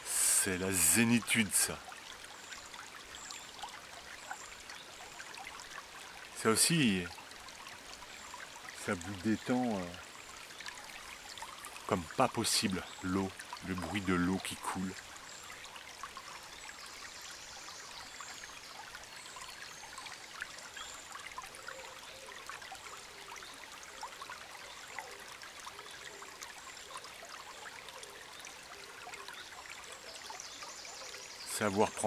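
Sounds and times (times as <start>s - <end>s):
stream trickling: 0.0s - 32.0s.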